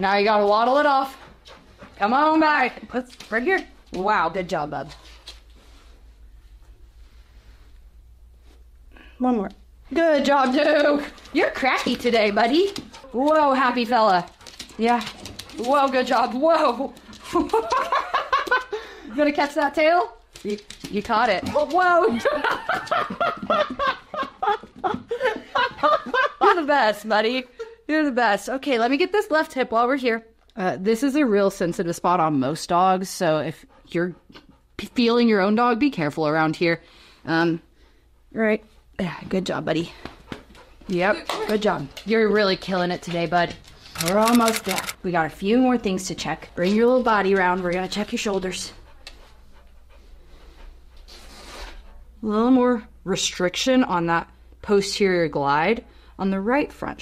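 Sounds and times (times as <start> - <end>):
dog panting: 0.6 - 2.9, 10.2 - 17.6, 33.0 - 35.6, 37.8 - 52.2
women laughing: 17.3 - 18.9, 22.0 - 26.8.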